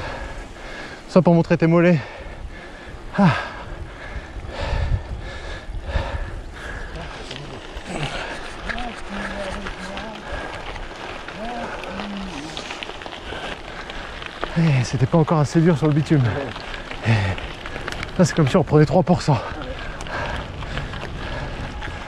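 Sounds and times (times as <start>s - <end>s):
cyclist breathing hard: 0.0s - 1.2s, 1.8s - 18.5s, 19.2s - 22.0s
wind noise: 2.0s - 22.0s
tyre noise: 5.9s - 22.0s
person grunting: 7.8s - 8.4s.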